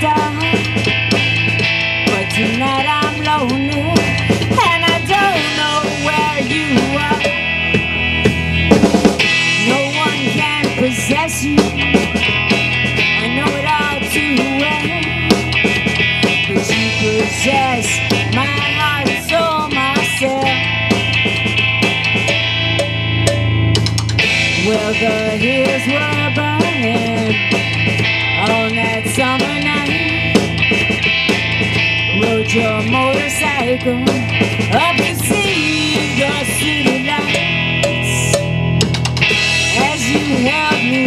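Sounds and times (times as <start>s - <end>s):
rock band playing: 0.0s - 41.0s.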